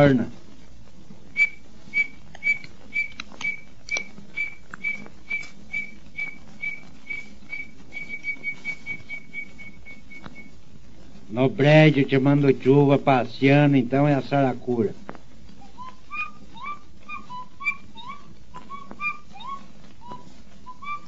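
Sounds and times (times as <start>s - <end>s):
whistled quail call: 1.4s - 10.5s, 15.6s - 21.0s.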